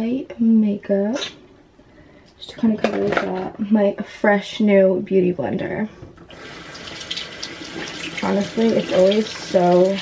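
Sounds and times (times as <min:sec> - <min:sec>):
sink tap running: 0:06.2 - 0:10.0.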